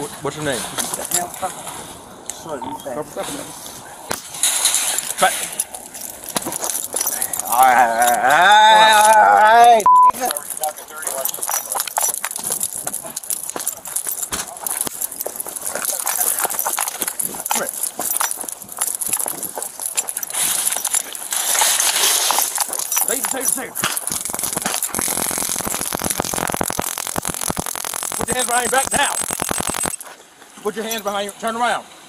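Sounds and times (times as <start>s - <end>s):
taser rapid sharp clicks: 23.9s - 30.0s.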